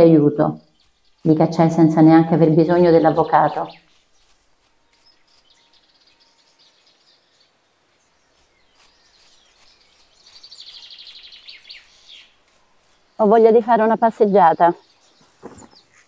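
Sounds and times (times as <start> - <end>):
rapid bird trill: 0.0 - 7.2, 8.3 - 16.0
high bird chirps: 0.3 - 7.4, 8.2 - 16.0.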